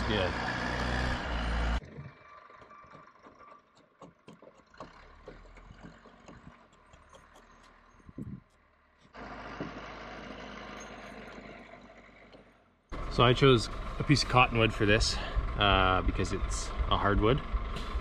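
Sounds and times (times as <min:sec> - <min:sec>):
hand tool clicking and scraping wood: 0:02.6 - 0:08.6
low engine-like hum: 0:04.6 - 0:18.0.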